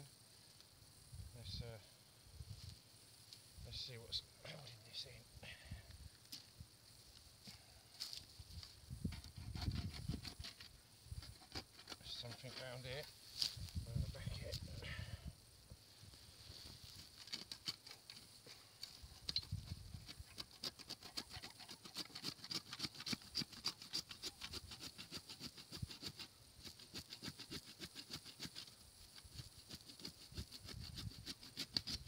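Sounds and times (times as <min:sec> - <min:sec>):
pruning saw rasping through roots: 0:09.2 - 0:13.1, 0:17.0 - 0:18.2, 0:18.9 - 0:32.0.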